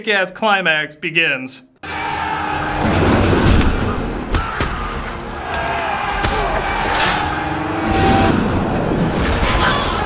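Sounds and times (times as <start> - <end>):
crowd charging and shouting: 1.8 - 10.0
film score music: 1.8 - 10.0.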